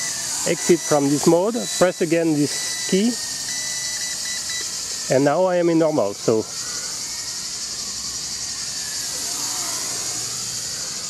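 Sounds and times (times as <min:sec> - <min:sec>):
radio transmitter beeping: 0:00.0 - 0:04.7.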